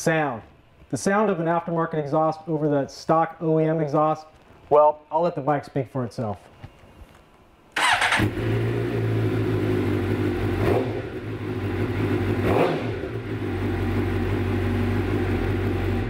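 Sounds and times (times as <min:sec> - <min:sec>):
motorcycle engine idling: 0:13.0 - 0:16.0.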